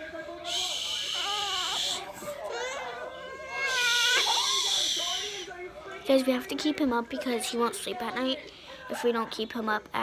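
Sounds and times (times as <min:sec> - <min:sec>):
baby fussing and crying: 0:00.4 - 0:05.6.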